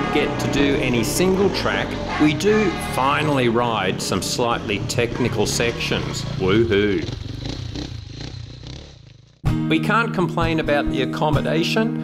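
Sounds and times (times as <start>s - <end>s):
dirt bike engine running: 0.0s - 9.5s.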